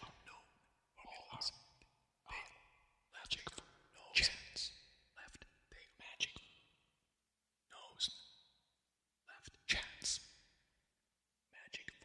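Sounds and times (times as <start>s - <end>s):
processed whispering voice: 0.0s - 1.6s, 2.3s - 6.5s, 7.7s - 8.2s, 9.3s - 10.2s, 11.6s - 12.0s.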